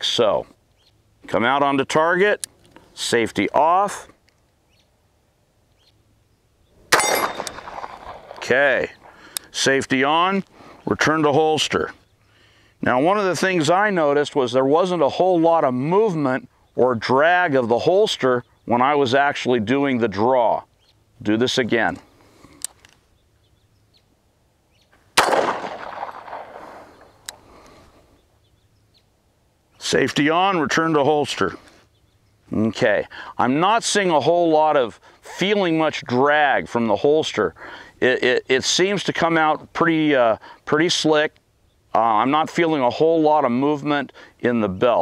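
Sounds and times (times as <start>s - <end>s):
pistol shot: 6.9s - 8.4s, 25.2s - 27.1s
steel target clang: 6.9s - 8.4s.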